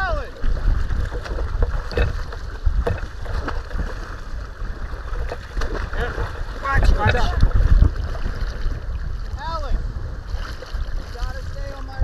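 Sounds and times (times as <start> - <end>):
choppy water splashing: 0.0 - 12.0
wind buffeting microphone: 0.0 - 12.0.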